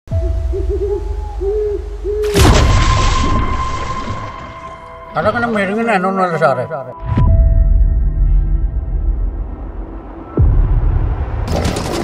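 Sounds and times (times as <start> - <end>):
owl hooting: 0.1 - 2.4.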